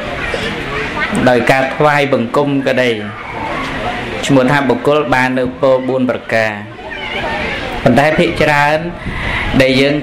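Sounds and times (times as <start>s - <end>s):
man preaching through a microphone: 1.1s - 3.2s, 4.2s - 6.7s, 7.9s - 10.0s.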